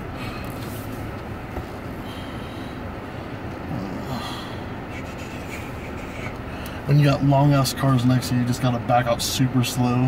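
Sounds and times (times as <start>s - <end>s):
car engine rumble from inside: 0.0s - 10.0s.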